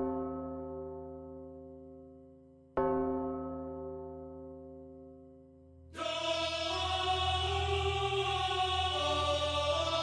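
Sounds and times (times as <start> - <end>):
choir singing wordless: 6.0 - 10.0
low drone: 6.0 - 10.0.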